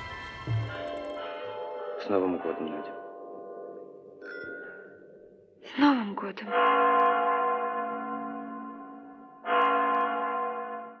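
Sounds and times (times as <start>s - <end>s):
clock bell striking: 0.0s - 3.9s, 6.5s - 11.0s.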